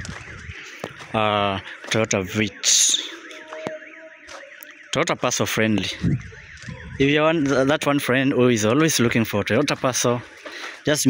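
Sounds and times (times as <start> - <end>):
warbling electronic alarm: 0.0 - 11.0.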